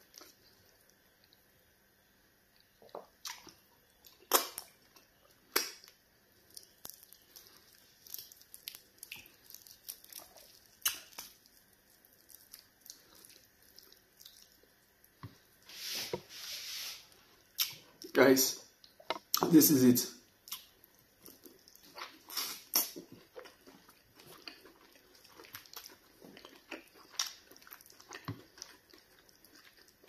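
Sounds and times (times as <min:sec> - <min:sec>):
wet chewing and lip smacks: 0:02.5 - 0:14.8, 0:20.4 - 0:30.0.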